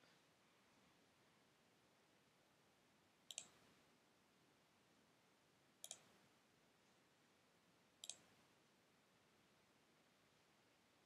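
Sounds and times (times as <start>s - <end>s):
mouse button clicks: 3.3s - 3.6s, 5.8s - 6.1s, 8.0s - 8.3s.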